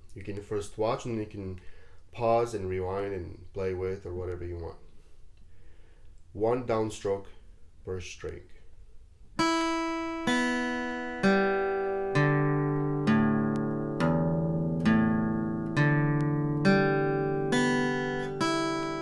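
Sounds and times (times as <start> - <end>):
acoustic guitar picked slowly: 9.4 - 19.0.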